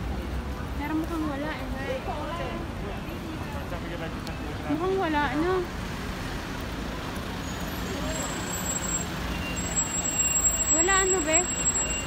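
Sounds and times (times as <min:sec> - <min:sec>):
slow street traffic engines: 0:00.0 - 0:12.0.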